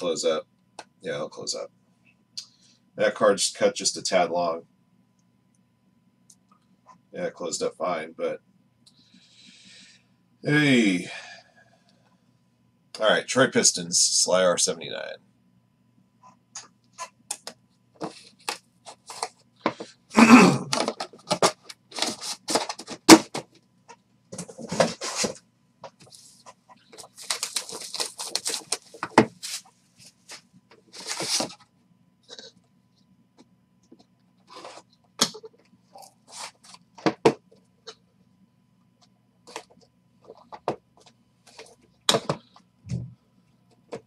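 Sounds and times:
cards and boxes handled on a table: 16.6s - 20.0s, 20.8s - 23.5s, 24.3s - 31.6s.

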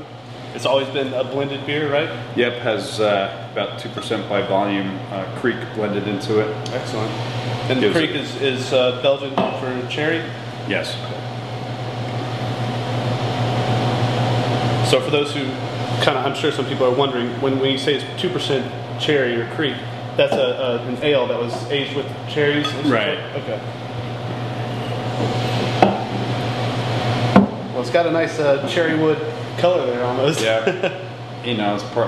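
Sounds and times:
air conditioning hum: 0.0s - 32.0s.

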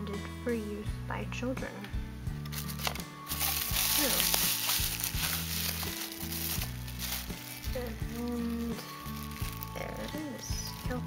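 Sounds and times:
background music: 0.0s - 11.0s
bubble wrap crinkling: 2.5s - 11.0s.

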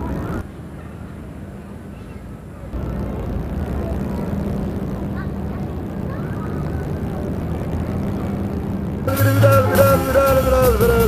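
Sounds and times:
low droning hum: 2.8s - 11.0s.

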